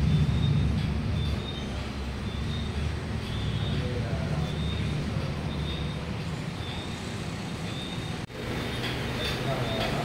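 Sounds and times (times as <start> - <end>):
low rumbling noise: 0.0 - 8.7.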